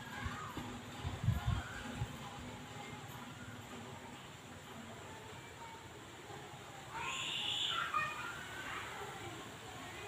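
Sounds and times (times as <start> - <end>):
high-pitched animal call: 7.0 - 8.2.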